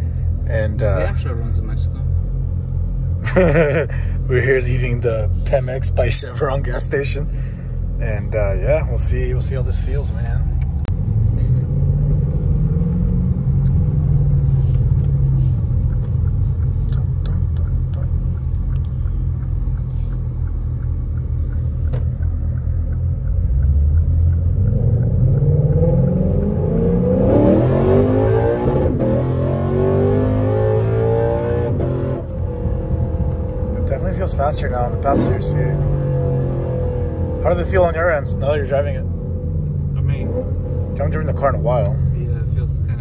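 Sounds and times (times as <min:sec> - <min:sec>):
car engine revving through upshifts: 0:08.2 - 0:20.2, 0:23.1 - 0:42.8.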